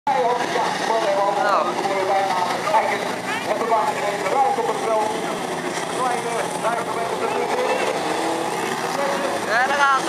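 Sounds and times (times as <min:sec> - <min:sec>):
race car engines: 0:00.1 - 0:10.0
voices talking: 0:00.1 - 0:10.0.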